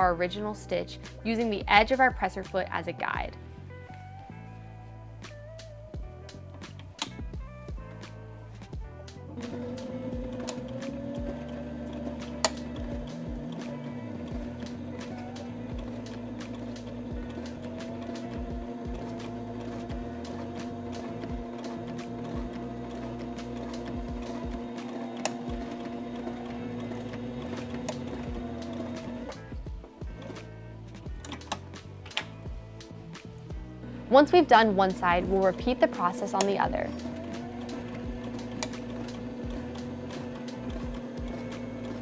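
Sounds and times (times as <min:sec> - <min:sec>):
sewing machine running: 0:09.4 - 0:30.5, 0:34.1 - 0:42.0.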